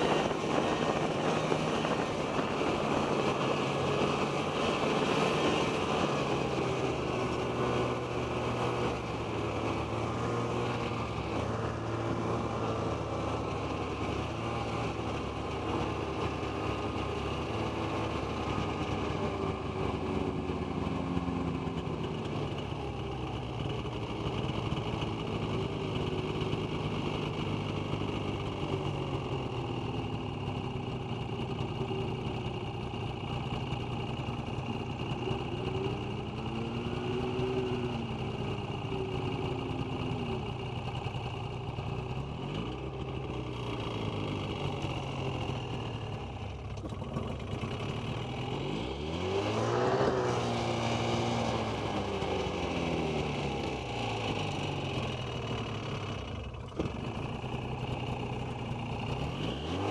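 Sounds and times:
snowmobile engine running: 0:00.0 - 0:59.9.

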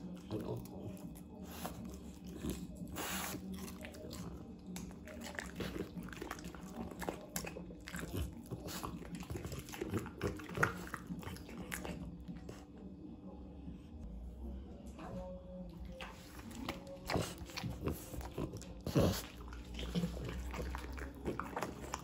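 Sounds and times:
dog chewing with wet crunches: 0:00.0 - 0:12.6, 0:15.9 - 0:22.0.

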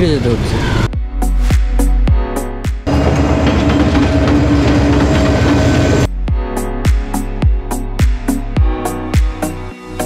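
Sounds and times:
locomotive engine drone: 0:02.9 - 0:06.1
wheels rumbling on rails: 0:02.9 - 0:06.1.

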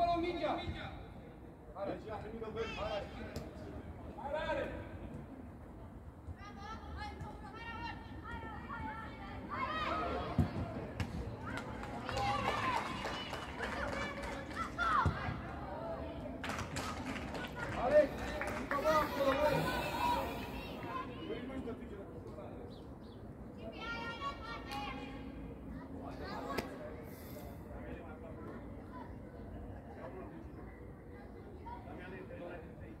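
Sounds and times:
children's voices: 0:18.8 - 0:21.2.

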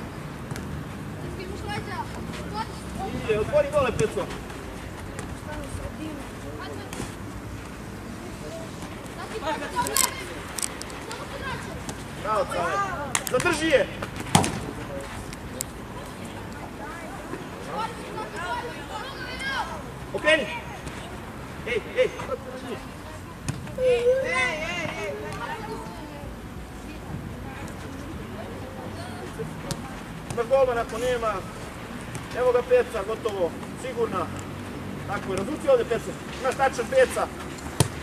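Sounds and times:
outdoor background noise: 0:00.0 - 0:38.0
faint shouting voices: 0:08.0 - 0:14.0, 0:14.8 - 0:31.6
distant shouts of players: 0:17.0 - 0:20.8, 0:23.7 - 0:26.1
football being kicked: 0:37.8 - 0:38.0.

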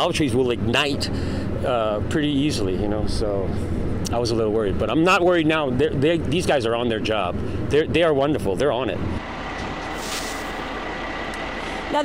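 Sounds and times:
motor vehicle running: 0:00.0 - 0:12.0.

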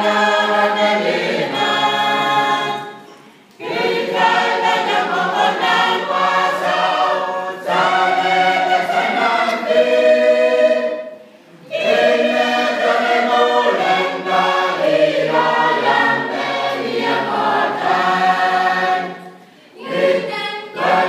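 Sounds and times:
mixed choir singing a hymn: 0:00.0 - 0:21.0.

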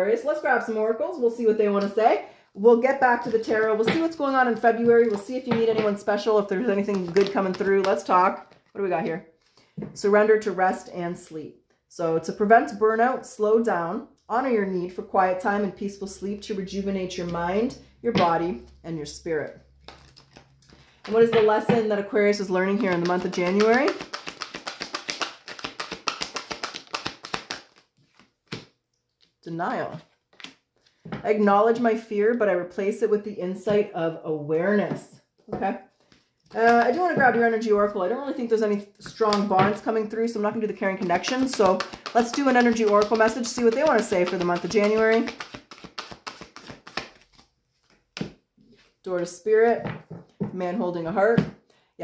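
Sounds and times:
cards being shuffled: 0:06.5 - 0:08.8, 0:19.6 - 0:21.4, 0:22.4 - 0:29.4, 0:30.0 - 0:31.0, 0:35.9 - 0:37.0, 0:41.0 - 0:48.9.

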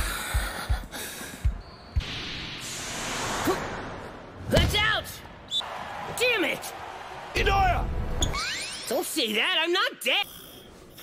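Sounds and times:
sneakers squeaking: 0:01.6 - 0:02.0
crowd noise: 0:05.4 - 0:08.3.

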